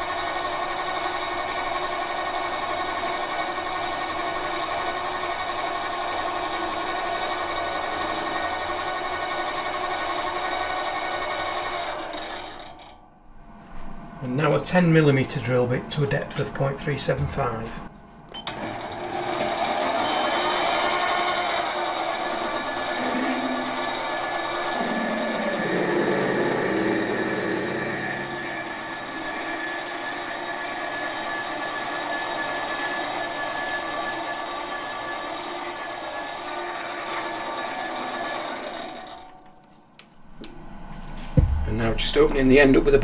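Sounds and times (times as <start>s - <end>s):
lathe drilling into metal: 0.0s - 12.9s, 18.5s - 39.3s.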